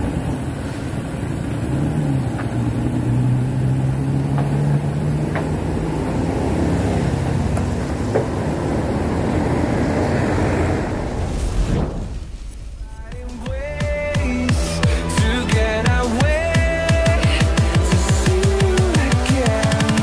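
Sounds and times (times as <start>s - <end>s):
vehicle engine running: 0.0s - 11.4s, 12.0s - 20.0s
road noise: 0.0s - 20.0s
wind noise: 7.5s - 14.4s.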